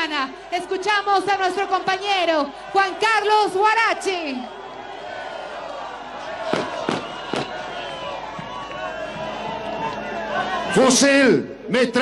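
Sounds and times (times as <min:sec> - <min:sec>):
large outdoor crowd noise: 0:00.0 - 0:12.0
firecracker bangs: 0:06.5 - 0:07.6.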